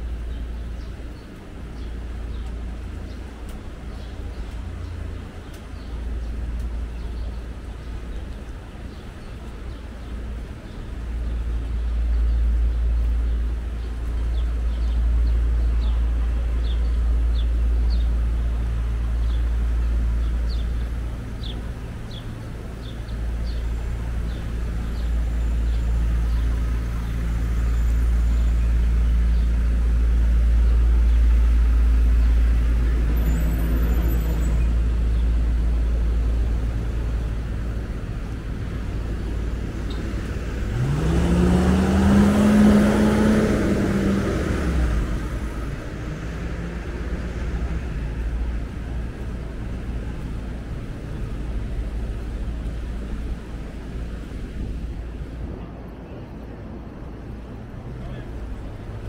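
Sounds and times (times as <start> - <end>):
city street traffic rumble: 0.0 - 59.0
truck passing by: 10.4 - 59.0.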